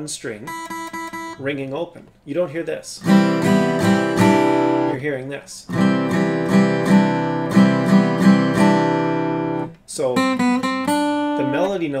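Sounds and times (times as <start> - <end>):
acoustic guitar chord strums: 0.3 - 2.2, 3.0 - 12.0.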